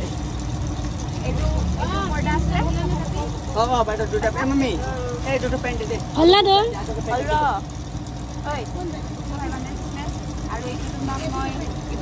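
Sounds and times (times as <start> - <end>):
background rumble: 0.0 - 12.0
people talking indistinctly: 0.0 - 12.0.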